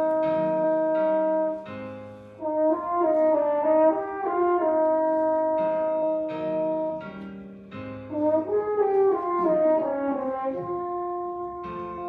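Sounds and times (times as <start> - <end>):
french horn solo: 0.0 - 1.7, 2.4 - 7.2, 8.1 - 12.0.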